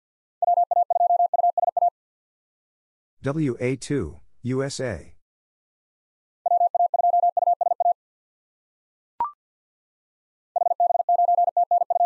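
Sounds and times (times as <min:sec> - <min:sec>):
morse code beeps: 0:00.4 - 0:01.9, 0:06.5 - 0:08.0, 0:10.6 - 0:12.0.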